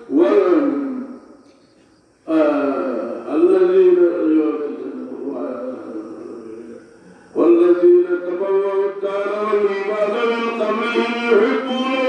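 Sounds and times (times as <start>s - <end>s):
man chanting a sermon: 0.0s - 1.4s, 2.3s - 12.0s.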